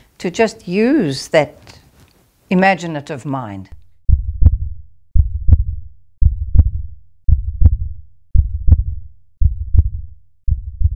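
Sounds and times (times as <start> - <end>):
heartbeat thumps: 3.7 - 10.9.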